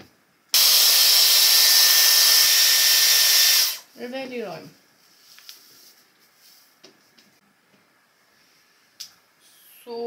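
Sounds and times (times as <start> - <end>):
hot-air brush blowing air: 0.6 - 3.9.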